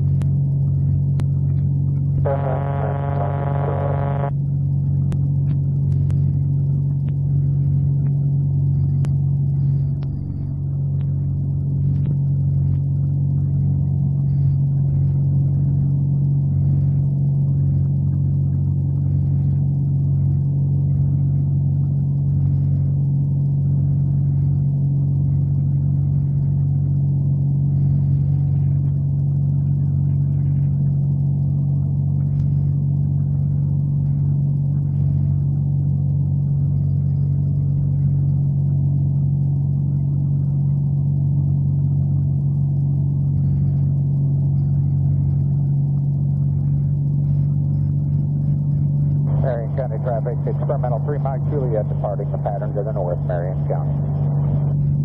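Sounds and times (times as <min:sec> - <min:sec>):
aircraft engine and propeller drone: 0:43.4 - 0:55.0.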